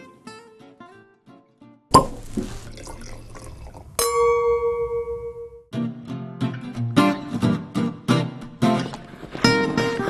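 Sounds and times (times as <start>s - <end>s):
liquid pouring and splashing: 1.9s - 4.0s.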